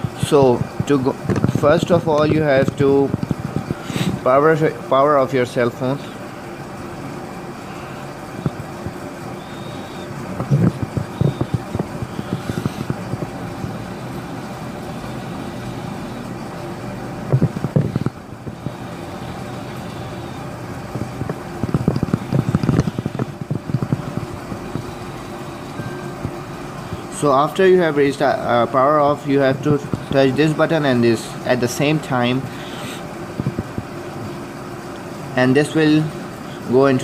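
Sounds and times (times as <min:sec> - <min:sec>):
steady background hum: 0:00.0 - 0:37.0.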